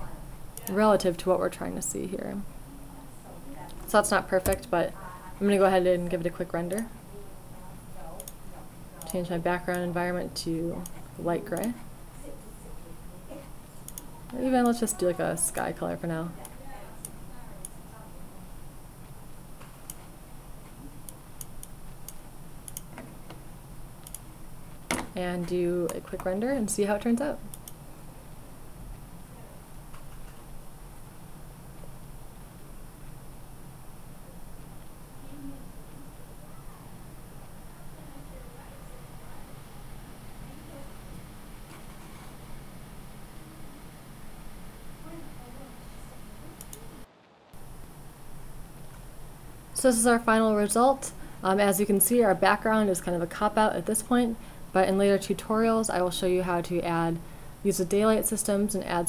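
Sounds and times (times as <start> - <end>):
low hiss: 0.0 - 59.0
low steady hum: 0.0 - 59.0
computer mouse clicking: 6.6 - 6.9, 8.2 - 8.4, 13.8 - 14.8, 21.0 - 23.1, 24.0 - 24.3, 27.5 - 27.8.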